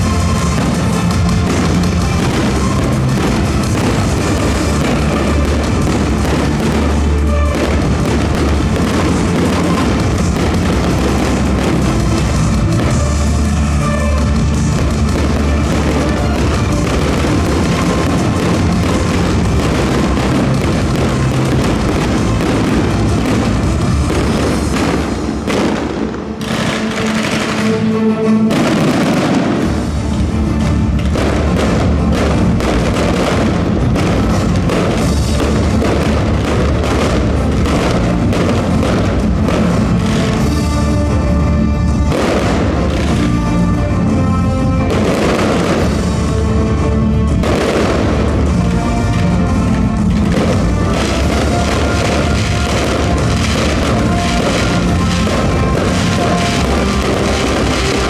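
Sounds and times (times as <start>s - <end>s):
fireworks bangs and crackle: 0.0s - 58.0s
loud music with heavy bass beat: 0.0s - 58.0s.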